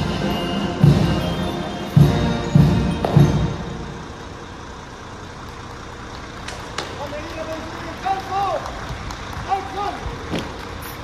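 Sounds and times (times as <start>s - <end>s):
drum beat ringing: 0.0s - 4.1s
city street traffic rumble: 0.0s - 11.0s.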